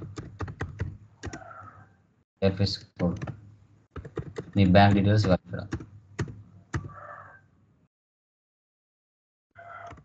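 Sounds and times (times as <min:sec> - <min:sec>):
computer keyboard keys clicking: 0:00.0 - 0:01.4, 0:04.0 - 0:06.9.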